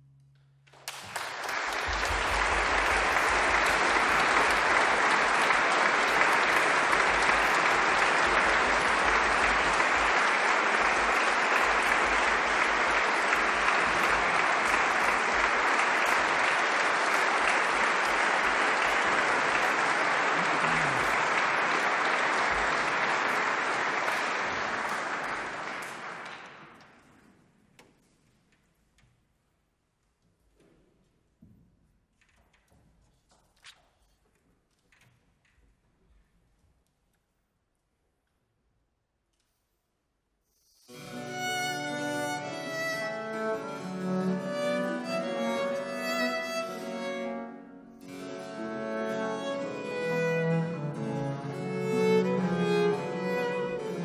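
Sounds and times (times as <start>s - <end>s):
audience applauding: 0.7s - 27.1s, 40.9s - 47.4s, 48.0s - 54.0s.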